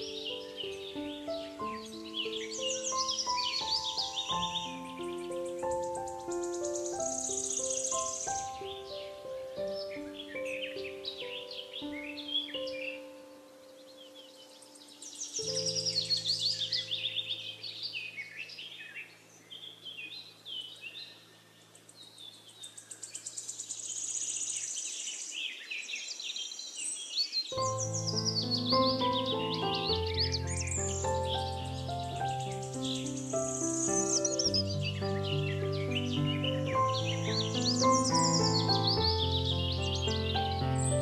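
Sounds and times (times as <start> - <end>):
soft solo piano: 0.0 - 17.6, 27.5 - 41.0
birds chirping: 0.0 - 41.0.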